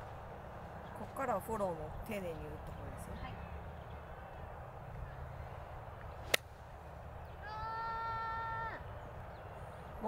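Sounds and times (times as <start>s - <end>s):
golf club striking ball: 6.3s - 6.5s.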